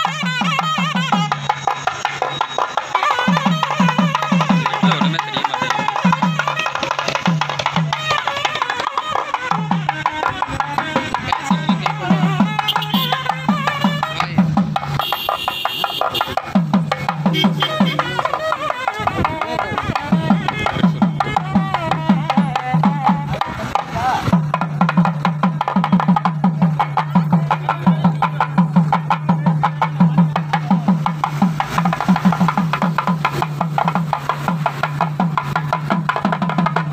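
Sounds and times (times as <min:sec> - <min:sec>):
frame drums beaten with sticks: 0:00.0 - 0:36.9
crowd voices: 0:01.6 - 0:15.0, 0:17.4 - 0:24.4.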